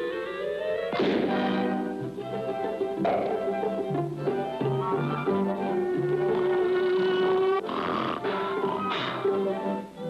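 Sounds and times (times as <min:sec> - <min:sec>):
cartoon orchestral music: 0:00.0 - 0:10.0.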